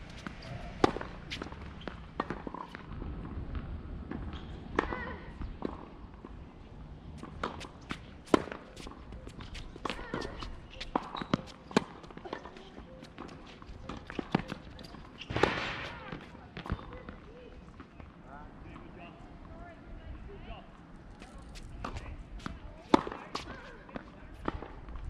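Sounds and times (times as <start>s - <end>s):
tennis racket hitting ball: 0.1s - 2.8s.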